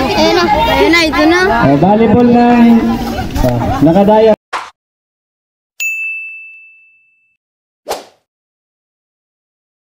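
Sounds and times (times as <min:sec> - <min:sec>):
bell-like ding: 0:05.8 - 0:07.4.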